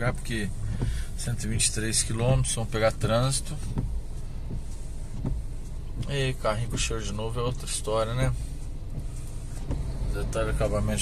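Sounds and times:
air conditioning: 0.0s - 11.0s
car engine hum in cabin: 0.0s - 11.0s.

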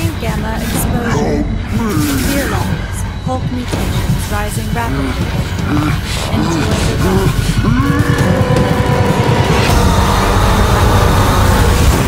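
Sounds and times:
heavy low rumble: 0.0s - 12.0s
roller coaster train rushing on track: 6.2s - 12.0s.

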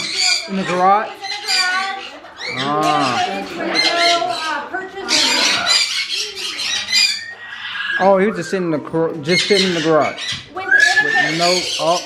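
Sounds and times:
parrots squawking: 0.0s - 12.0s
people's voices: 0.0s - 12.0s.

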